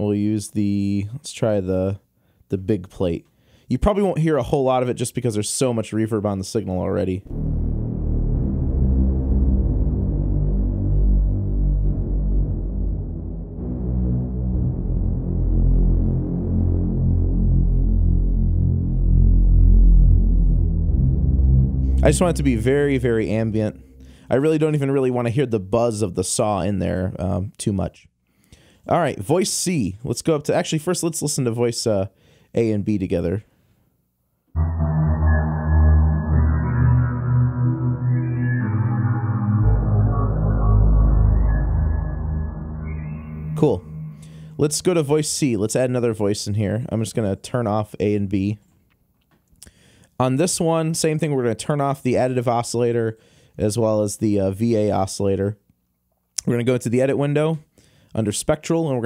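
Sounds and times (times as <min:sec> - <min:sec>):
buzzy synthesizer bass drone: 0:07.2 - 0:25.0, 0:34.6 - 0:45.1.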